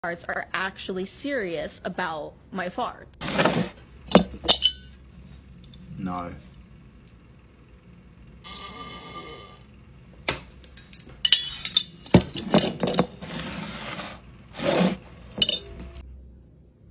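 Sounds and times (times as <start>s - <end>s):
glass jar clinking: 4.1s - 5.0s, 10.8s - 13.2s, 15.4s - 15.9s.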